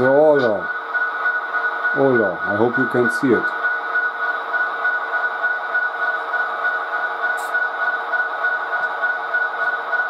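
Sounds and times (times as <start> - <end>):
model locomotive diesel engine hum: 0.0 - 10.0.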